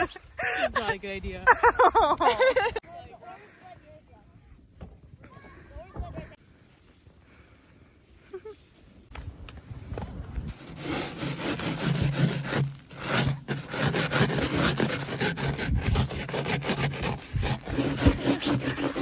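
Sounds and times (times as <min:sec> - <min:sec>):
hand brushing snow off sign: 0:10.5 - 0:19.0.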